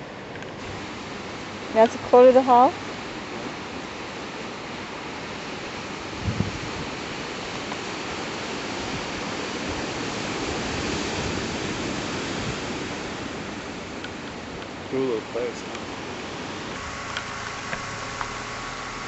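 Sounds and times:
surf breaking on rocks: 0.6s - 18.8s.

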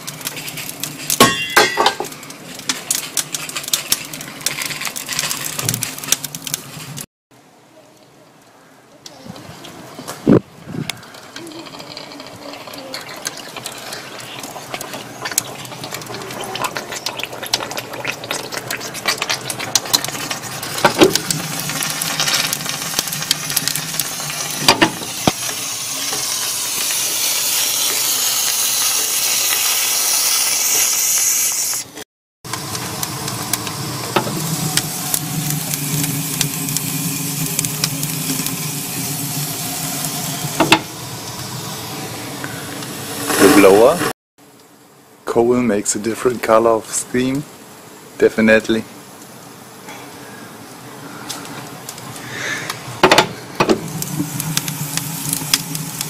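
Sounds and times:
steam hissing: 11.0s - 44.1s, 52.2s - 56.0s.

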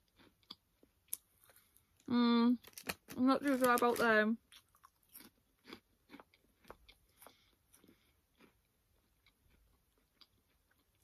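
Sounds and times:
crisp crunching and chewing: 0.0s - 11.0s.

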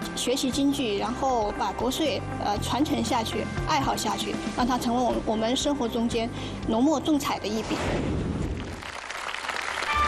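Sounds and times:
studio audience applauding: 8.6s - 10.0s.

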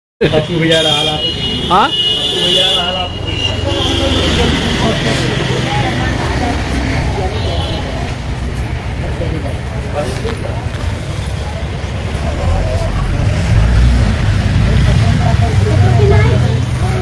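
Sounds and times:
indistinct voices: 1.6s - 17.0s
steady low rumble: 11.7s - 17.0s.

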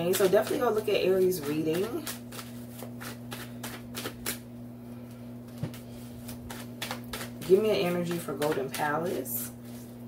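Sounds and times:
cards being shuffled: 1.4s - 4.4s.

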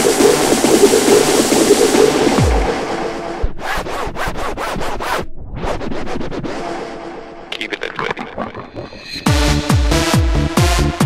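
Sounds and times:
electronic dance music: 0.0s - 3.4s, 7.5s - 11.0s
stuttering chopped noise hits: 7.5s - 9.7s.

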